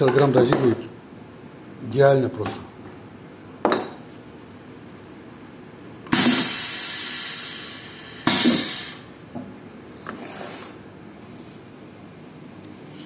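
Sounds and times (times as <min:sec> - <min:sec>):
compressed air hissing: 0:06.1 - 0:09.2.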